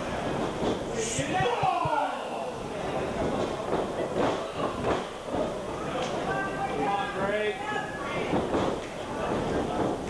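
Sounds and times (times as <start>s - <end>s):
voices: 1.0s - 10.0s.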